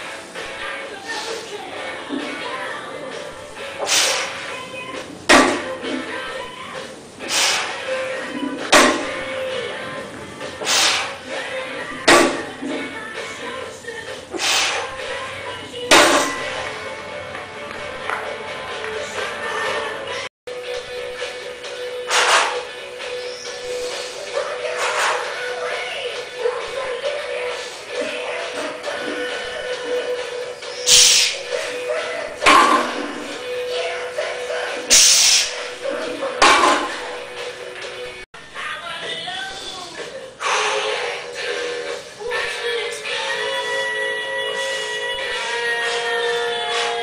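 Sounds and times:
background music: 0.0s - 47.0s
forced breathing bursts: 3.6s - 4.5s, 7.2s - 8.0s, 10.5s - 11.3s, 14.3s - 15.0s, 22.0s - 22.8s, 23.5s - 25.4s, 27.5s - 28.3s, 40.4s - 41.4s
weight plates hitting floor: 5.3s - 5.7s, 8.6s - 9.2s, 15.9s - 16.5s, 32.4s - 33.3s, 36.4s - 37.1s
barbell being set down: 15.9s - 16.4s, 32.4s - 33.1s, 36.4s - 37.0s.

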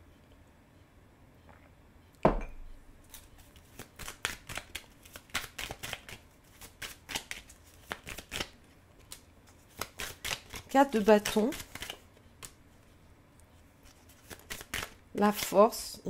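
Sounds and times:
cup set down on table: 2.2s - 2.7s
cards being shuffled: 3.1s - 12.6s, 13.8s - 15.5s.

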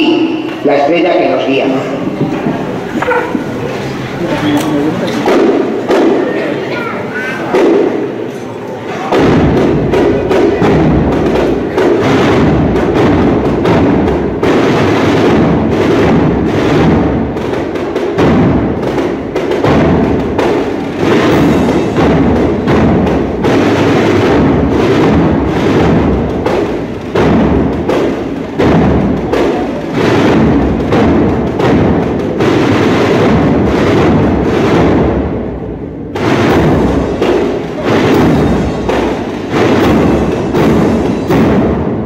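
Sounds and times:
marching band drums: 0.0s - 8.4s, 9.0s - 42.0s.

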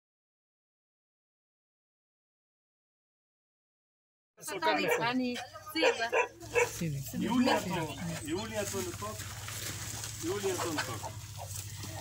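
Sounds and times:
people talking: 4.4s - 9.3s, 10.1s - 12.0s
woman's voice: 4.5s - 8.1s.

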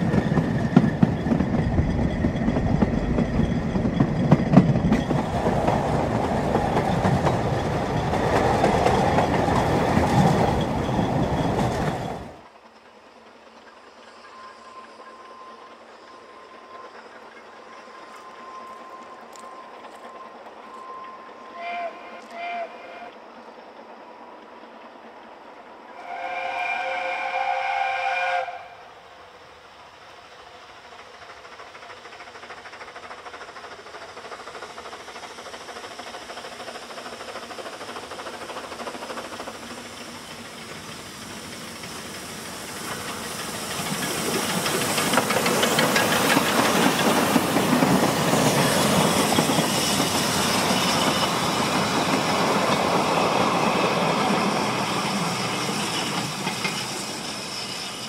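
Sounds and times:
steam engine exhaust and hiss: 0.0s - 58.0s
steam locomotive whistle: 18.1s - 23.3s, 25.9s - 29.2s.

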